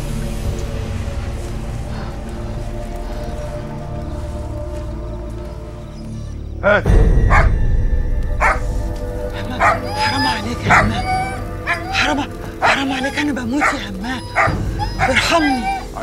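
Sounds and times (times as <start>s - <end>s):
dog barking: 7.3s - 7.6s, 8.4s - 8.8s, 9.4s - 16.0s.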